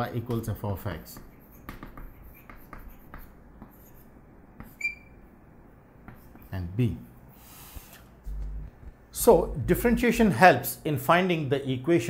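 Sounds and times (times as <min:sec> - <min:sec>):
chalk tapping and scratching: 0:00.2 - 0:05.0, 0:06.0 - 0:06.5.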